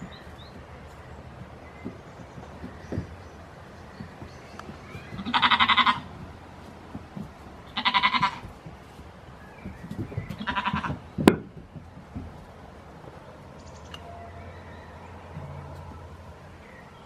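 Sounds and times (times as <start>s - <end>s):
goat kid bleating: 5.2s - 6.1s, 7.8s - 8.4s, 10.4s - 11.0s.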